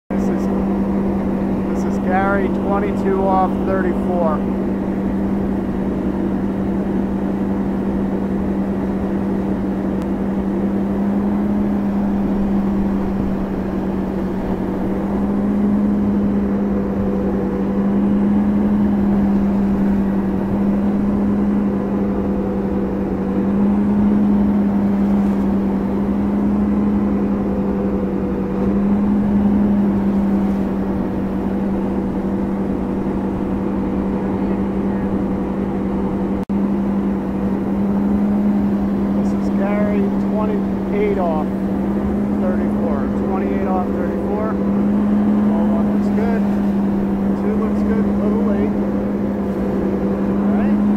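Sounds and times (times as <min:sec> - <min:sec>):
boat engine drone: 0:00.0 - 0:50.9
wind: 0:00.0 - 0:50.9
wake rushing: 0:00.1 - 0:50.9.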